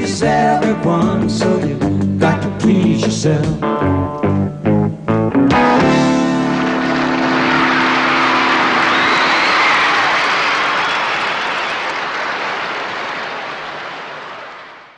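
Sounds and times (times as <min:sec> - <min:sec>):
rock band chord ringing: 0:05.4 - 0:10.0
audience applause: 0:06.5 - 0:14.9.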